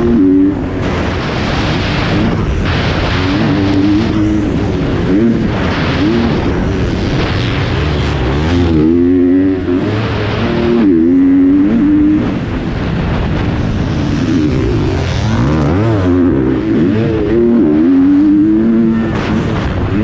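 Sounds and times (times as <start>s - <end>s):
motocross bike engine revving: 0.0s - 20.0s.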